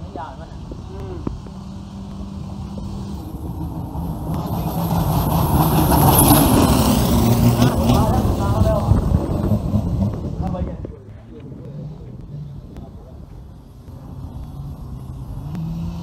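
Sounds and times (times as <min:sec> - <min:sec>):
boat engine passing at high speed: 0:00.5 - 0:13.2.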